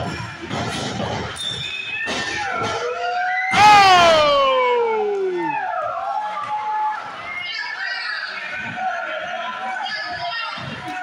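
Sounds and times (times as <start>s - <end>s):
spectator shouting: 3.5s - 5.8s.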